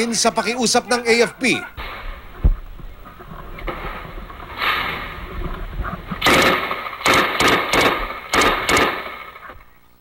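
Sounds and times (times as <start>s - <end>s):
machine gun bursts: 6.2s - 9.5s.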